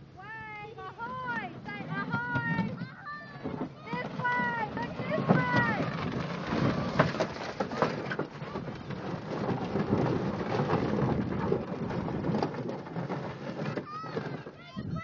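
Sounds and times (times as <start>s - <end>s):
metal boat hull scraping over gravel: 1.4s - 14.8s.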